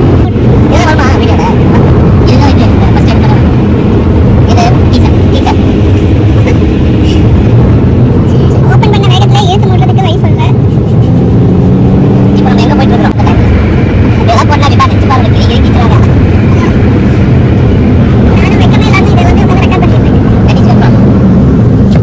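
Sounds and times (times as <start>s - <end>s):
road and engine rumble: 0.0s - 22.0s.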